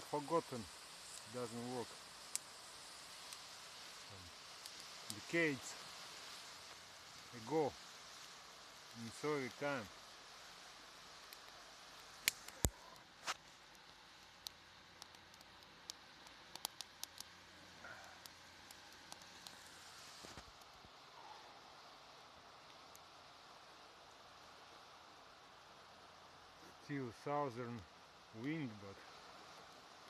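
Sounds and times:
campfire crackling: 0:00.0 - 0:30.0
fire popping: 0:00.0 - 0:30.0
wind hiss: 0:00.0 - 0:30.0.

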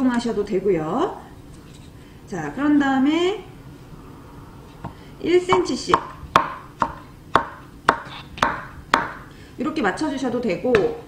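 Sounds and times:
knife chopping on wooden board: 0:04.8 - 0:09.2.

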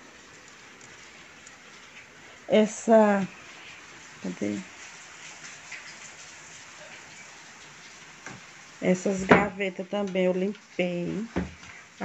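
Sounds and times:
rain falling: 0:00.0 - 0:12.0.

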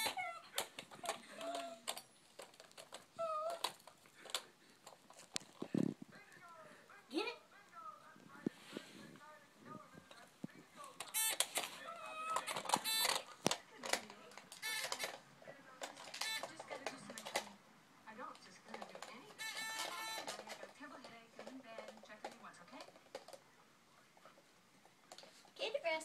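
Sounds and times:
dog chewing: 0:00.0 - 0:06.6.

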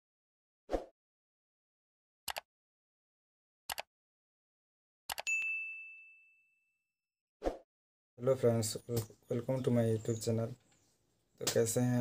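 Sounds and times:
notification bell ding: 0:05.3 - 0:06.7.

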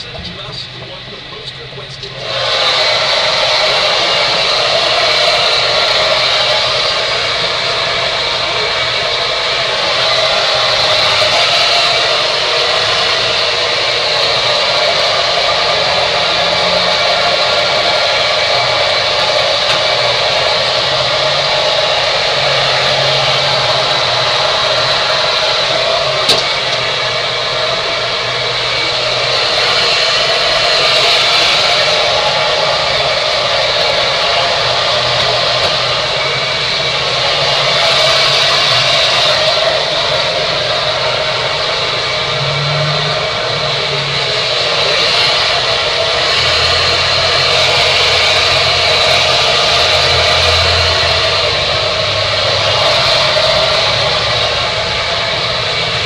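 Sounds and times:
hair dryer blowing: 0:00.0 - 0:56.0.

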